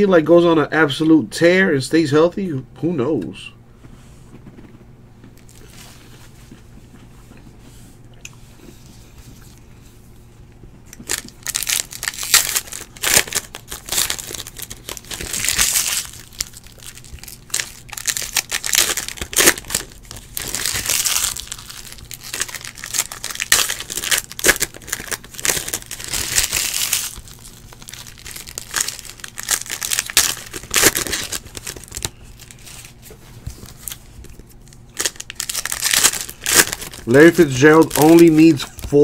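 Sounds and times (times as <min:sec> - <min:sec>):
foil wrappers crinkling and tearing: 0:10.9 - 0:39.0.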